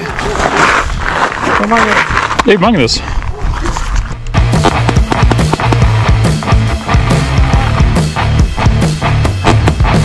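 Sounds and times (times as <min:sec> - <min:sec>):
man talking: 0:01.6 - 0:03.1.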